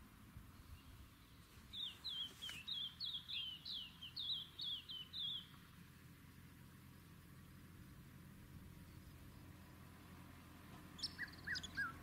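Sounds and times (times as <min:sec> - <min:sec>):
faint outdoor background noise: 0:00.0 - 0:12.0
songbird singing: 0:00.0 - 0:12.0.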